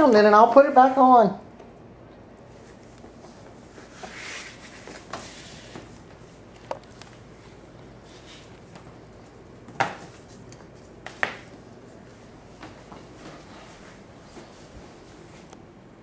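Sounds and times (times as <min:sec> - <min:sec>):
puppy scuffling on tile floor: 0:02.5 - 0:15.5.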